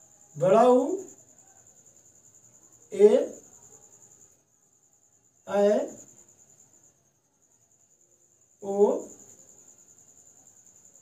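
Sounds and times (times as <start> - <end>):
cricket trill: 0.0 - 11.0.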